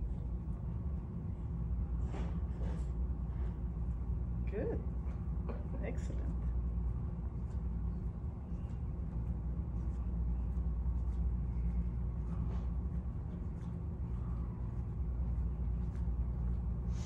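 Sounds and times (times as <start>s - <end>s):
ventilation system hum: 0.0s - 17.0s.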